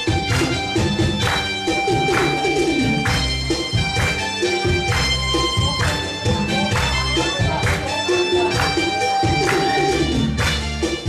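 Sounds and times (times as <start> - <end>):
electronic keyboard dance tune: 0.0 - 11.0
steady electronic beat: 0.0 - 11.0.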